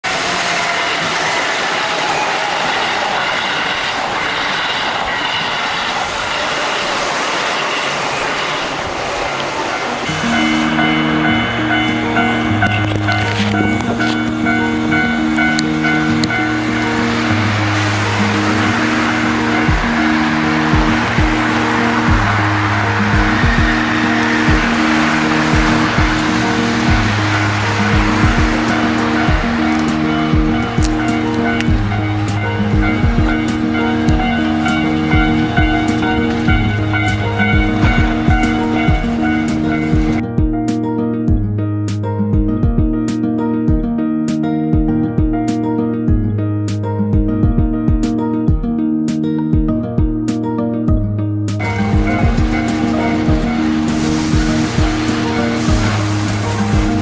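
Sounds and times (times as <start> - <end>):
electric train passing: 0.0 - 41.4, 51.5 - 57.0
background music with beat: 10.1 - 57.0.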